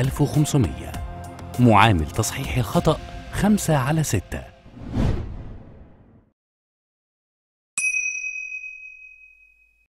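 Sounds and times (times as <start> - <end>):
bell-like ding: 7.8 - 9.9.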